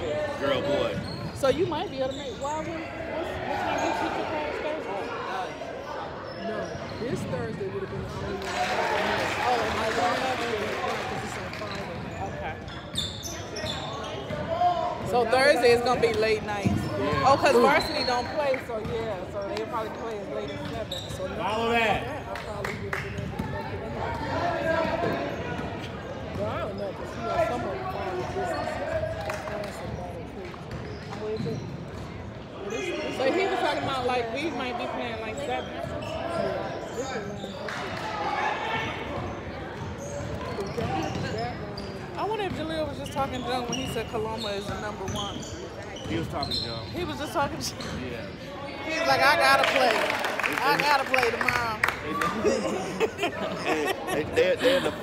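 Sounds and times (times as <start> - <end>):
spectators talking: 0.0 - 55.0
sneakers squeaking on wood floor: 0.4 - 4.2, 6.2 - 8.3, 11.6 - 22.0, 30.6 - 37.7, 39.1 - 49.3.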